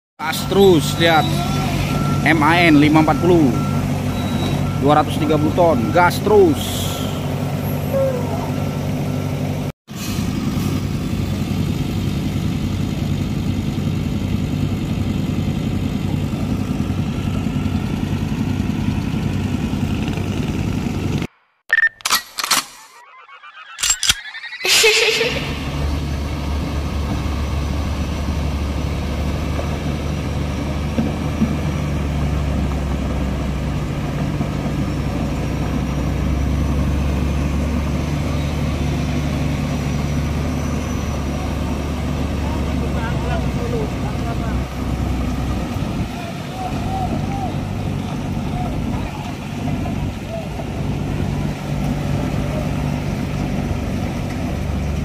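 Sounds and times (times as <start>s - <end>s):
diesel truck engine running: 0.2s - 21.3s, 25.3s - 55.0s
sharp clicks: 21.7s - 24.5s.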